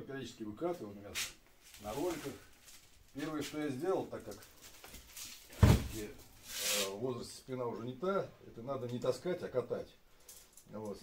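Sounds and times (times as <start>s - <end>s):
sack fabric rustling: 1.6s - 3.4s
sack thumping on concrete: 5.5s - 6.1s.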